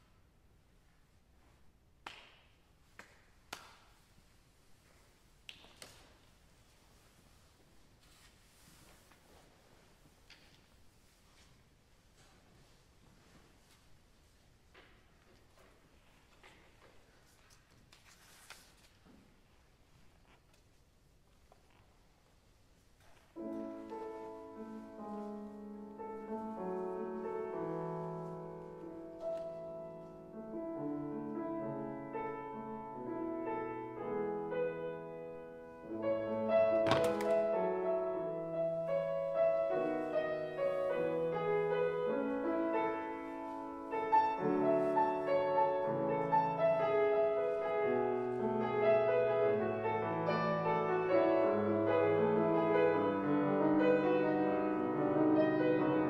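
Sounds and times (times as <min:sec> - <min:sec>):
single hand claps: 0:02.0 - 0:02.4, 0:03.0 - 0:03.9
faint rustling: 0:04.0 - 0:33.6, 0:34.3 - 0:56.0
grand piano playing slow piece: 0:23.4 - 0:56.0.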